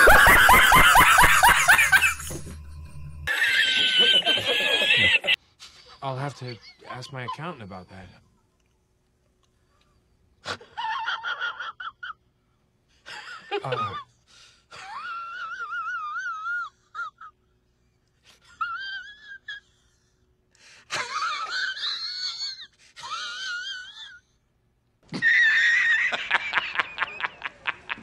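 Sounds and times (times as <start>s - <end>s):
rapid laughter: 0.0s - 2.5s, 3.3s - 5.9s, 25.1s - 28.0s.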